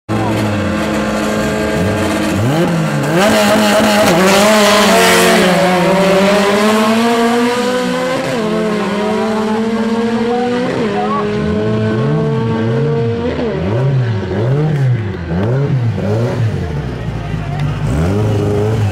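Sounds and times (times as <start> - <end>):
car engines at full throttle: 0.1 - 18.9.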